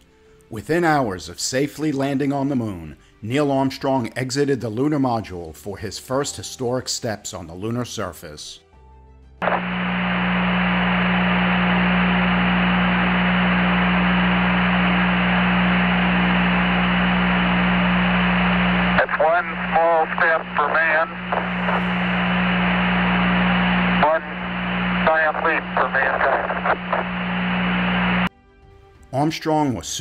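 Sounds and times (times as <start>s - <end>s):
constant hum: 9.4s - 28.3s
radio static hiss: 9.4s - 28.3s
voice over radio: 11.5s - 28.2s.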